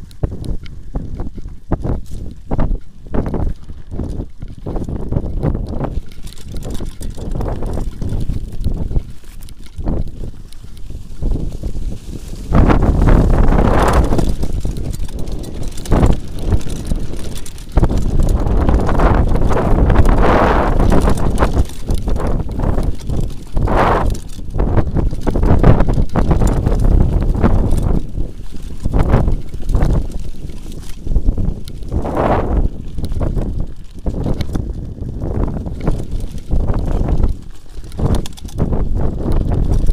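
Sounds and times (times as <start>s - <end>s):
bike rattling over bumps: 0.0s - 39.9s
bike tyre rumble: 0.0s - 39.9s
wind noise on microphone: 0.0s - 39.9s.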